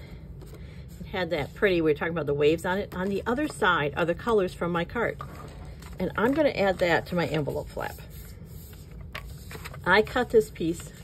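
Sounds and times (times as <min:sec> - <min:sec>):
paper scraping and rustling: 0:05.0 - 0:11.0.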